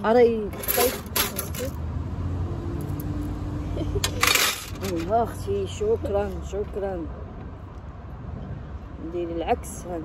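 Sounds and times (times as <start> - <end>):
metal skewers clinking: 0.4 - 1.8, 3.9 - 5.4.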